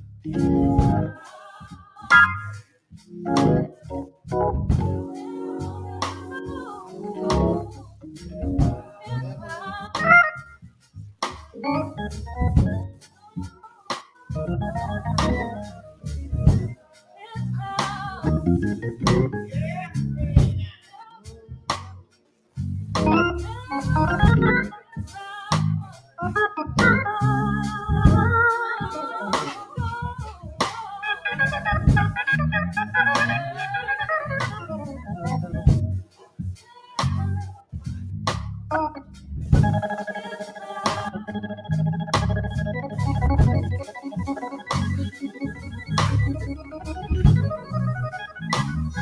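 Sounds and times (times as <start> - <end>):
church organ playing chords: 0.0 - 1.2, 2.1 - 8.8, 11.6 - 13.0, 14.4 - 16.7, 18.3 - 19.6, 23.0 - 24.8, 31.0 - 36.0, 38.7 - 49.0.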